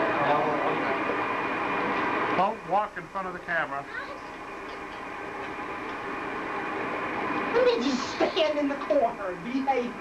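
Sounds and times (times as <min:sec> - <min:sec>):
steady hiss: 0:06.0 - 0:10.0.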